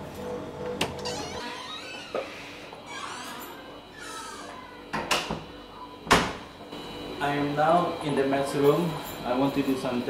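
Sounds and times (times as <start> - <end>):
metal gate hinges squealing: 1.0 - 4.5.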